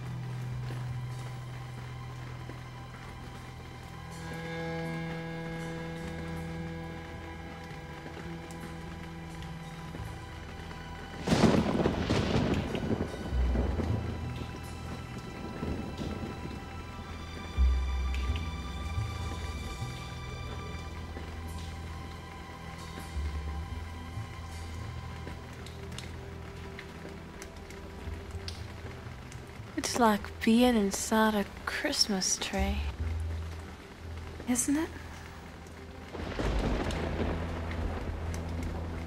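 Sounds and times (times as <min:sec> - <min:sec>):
slow sustained score music: 0:00.0 - 0:39.0.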